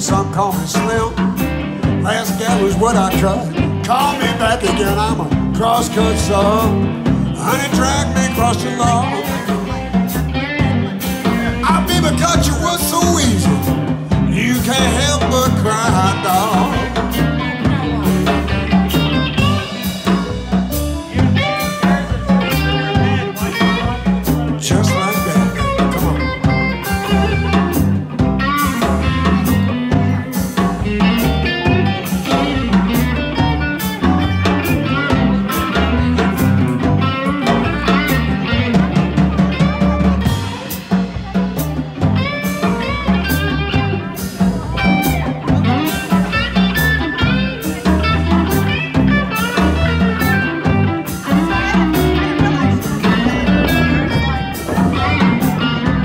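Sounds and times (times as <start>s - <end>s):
bass: 0.0s - 56.0s
drum kit: 0.0s - 56.0s
electric guitar: 0.0s - 56.0s
keyboard: 0.0s - 56.0s.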